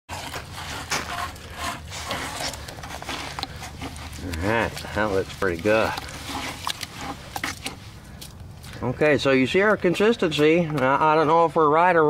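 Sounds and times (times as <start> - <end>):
hand stirring wet cement: 0.1 - 12.0.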